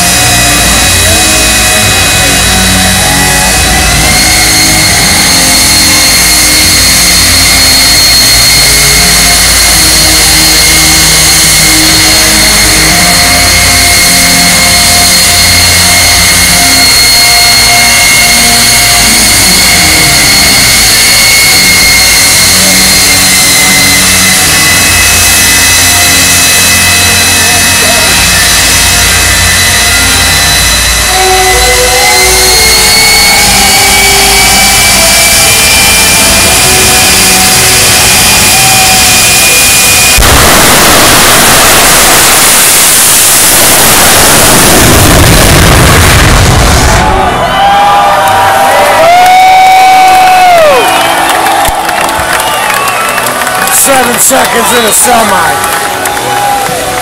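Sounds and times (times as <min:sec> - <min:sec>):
jet engine whine and rumble: 0:00.0 - 0:48.1.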